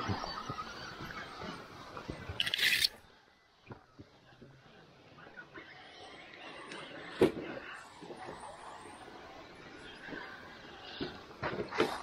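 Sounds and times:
toy crawler clattering over rocks: 0:02.3 - 0:03.0.

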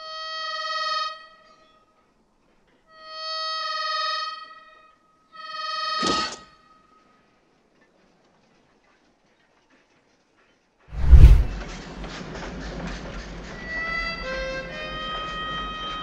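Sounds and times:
heavy low thump: 0:11.0 - 0:11.6.

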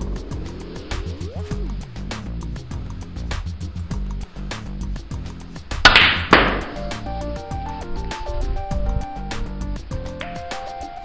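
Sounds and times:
background music with steady beat: 0:00.0 - 0:11.0
snooker balls colliding: 0:05.8 - 0:07.1
cue tip striking cue ball: 0:05.9 - 0:07.0.

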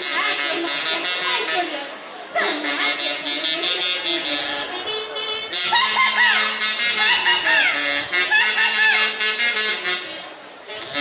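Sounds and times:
reed and brass band music: 0:02.4 - 0:11.0.

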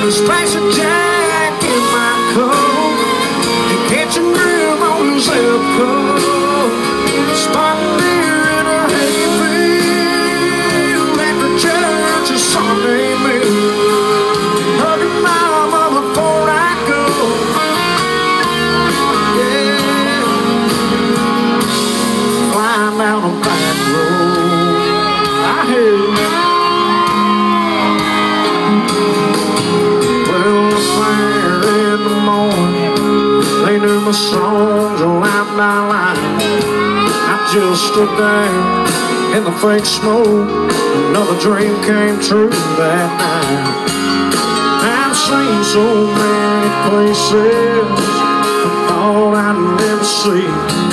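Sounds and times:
live country band: 0:00.0 - 0:50.9
man singing amplified: 0:00.0 - 0:50.9.

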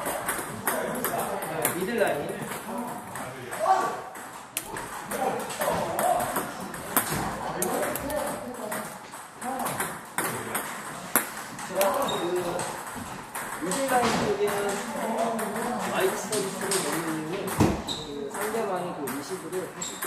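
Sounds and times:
table tennis ball hits: 0:00.0 - 0:20.0.

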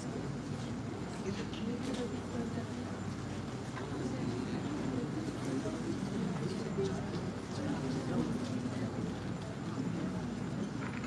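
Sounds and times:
large hall hum: 0:00.0 - 0:11.0.

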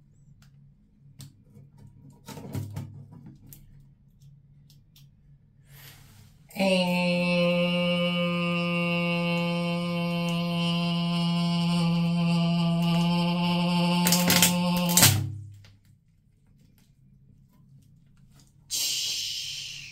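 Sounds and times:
loud steady drone: 0:06.5 - 0:15.4
crab shell cracking: 0:14.0 - 0:15.2.

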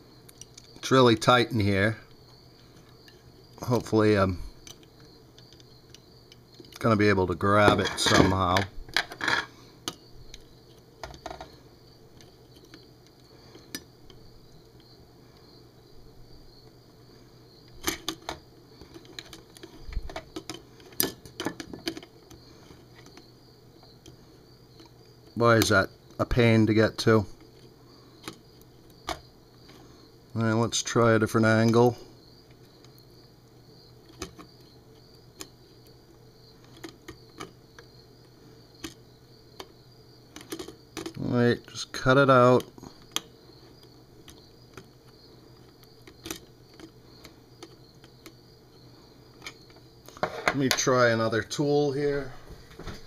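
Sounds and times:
faint steady hum: 0:00.0 - 0:53.0.

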